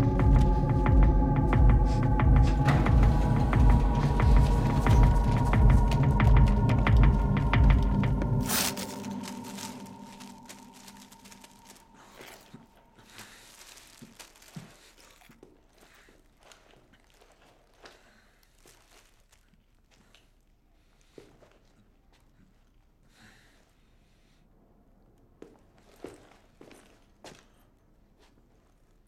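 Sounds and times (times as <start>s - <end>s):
loud film score: 0.0s - 13.0s
plastic food packet crinkling: 8.4s - 20.5s.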